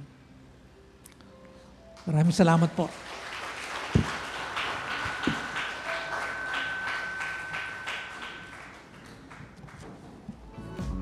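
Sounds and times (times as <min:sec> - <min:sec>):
crowd applauding: 0:02.8 - 0:10.3
steady high tone: 0:04.8 - 0:09.6.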